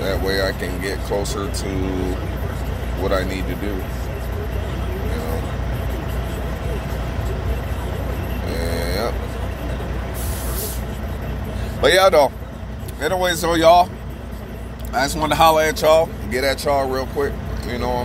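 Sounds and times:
diesel engine idling: 0.0s - 18.0s
brief hiss: 10.2s - 10.8s.

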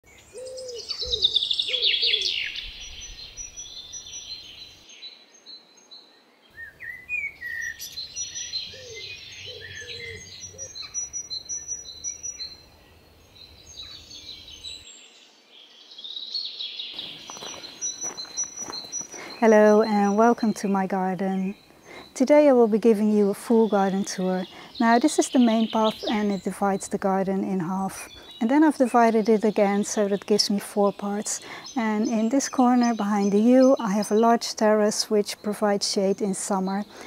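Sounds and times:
birds singing and chirping: 0.0s - 37.0s
lower bird call: 0.1s - 13.0s.

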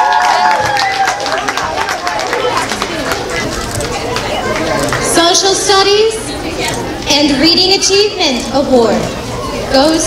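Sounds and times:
audience clapping: 0.0s - 5.1s
crowd chatter: 0.0s - 10.0s.

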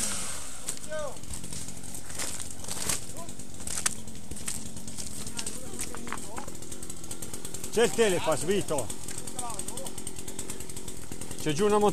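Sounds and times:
chainsaw engine running: 0.0s - 11.9s.

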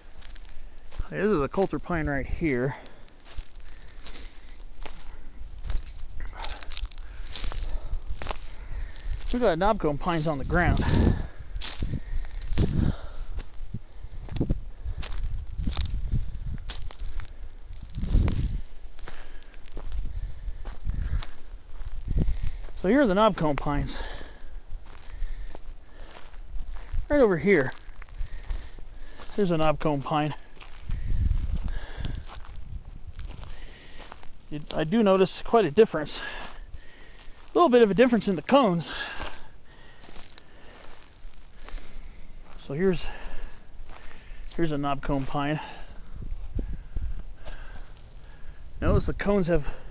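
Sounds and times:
footsteps crunching on pine needles: 0.0s - 49.9s.

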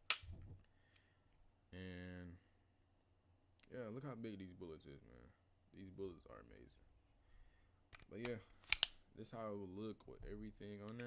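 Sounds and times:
pistol metallic click: 0.0s - 0.3s, 8.6s - 9.0s.

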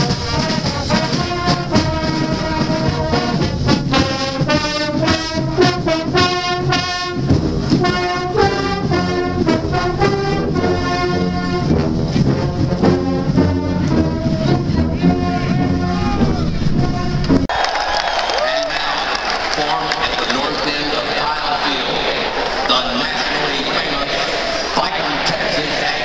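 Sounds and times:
marching band brass playing: 0.0s - 17.6s, 18.6s - 26.0s.

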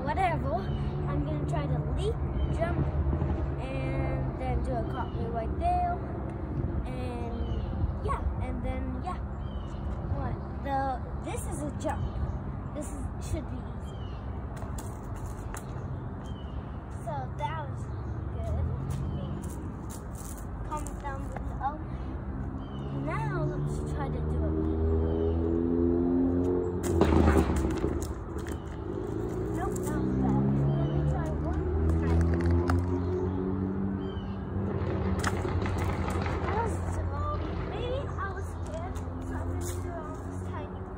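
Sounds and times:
girl making wordless voice sounds: 0.0s - 2.9s, 3.6s - 6.2s, 6.8s - 14.0s, 16.9s - 19.6s, 20.6s - 22.2s, 22.9s - 24.8s, 29.3s - 32.7s, 36.5s - 40.9s
low outdoor rumble: 0.0s - 40.9s.

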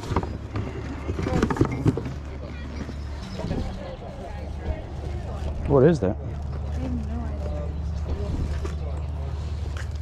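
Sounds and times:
distant people talking: 0.3s - 9.9s.

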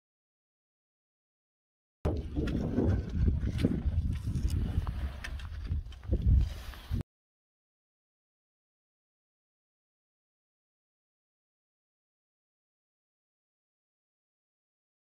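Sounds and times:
footsteps on rocky scree: 2.1s - 7.0s
wind on microphone: 2.1s - 7.0s.

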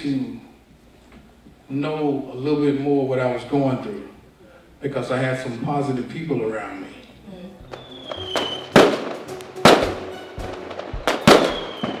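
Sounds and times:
firework bangs with crackling: 7.6s - 12.0s
firework whistle falling: 7.6s - 12.0s.

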